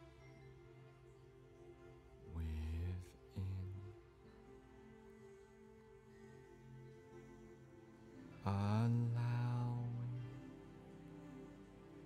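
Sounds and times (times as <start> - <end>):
soft ambient meditation music: 0.0 - 12.0
deep voice chanting low note: 2.3 - 3.9, 8.4 - 10.6.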